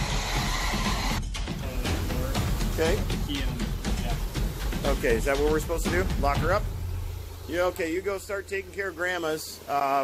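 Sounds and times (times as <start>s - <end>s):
background music: 0.0s - 9.7s.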